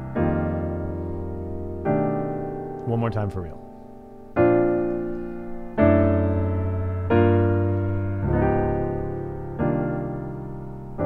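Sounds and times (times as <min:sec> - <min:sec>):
piano playing jazz chords: 0:00.0 - 0:11.0.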